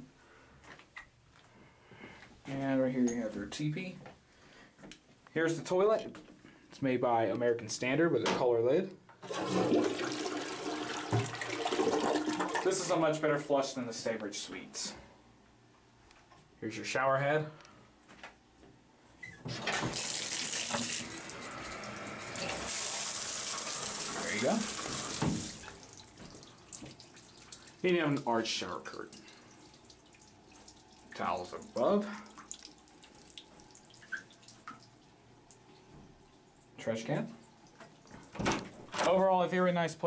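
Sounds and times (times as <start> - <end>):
toilet flushing: 9.2 - 13.0, 19.5 - 34.6
shower spraying on tiles: 19.8 - 27.7
water drips: 20.0 - 38.4.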